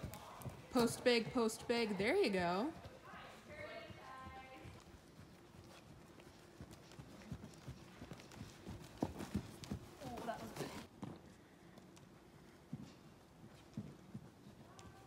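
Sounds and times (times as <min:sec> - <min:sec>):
horse hoofbeats on sand: 0:00.0 - 0:15.0.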